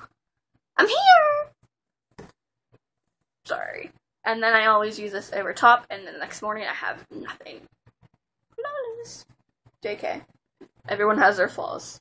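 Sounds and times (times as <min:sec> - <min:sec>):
woman's squeaky exclaiming voice: 0:00.8 - 0:01.5.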